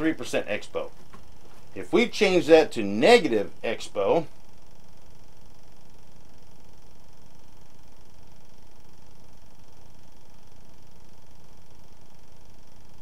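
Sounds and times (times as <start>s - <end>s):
room tone hiss and hum: 0.0s - 13.0s.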